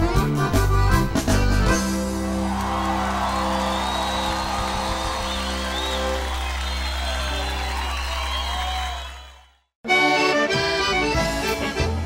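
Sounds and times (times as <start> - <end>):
accordions and bass chord: 0.0 - 2.5, 3.5 - 7.4, 9.8 - 12.0
crowd cheering and whistling: 2.1 - 9.7.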